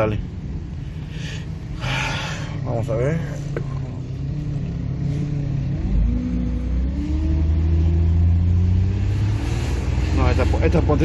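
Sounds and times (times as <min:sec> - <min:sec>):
car engine accelerating: 0:01.6 - 0:11.0.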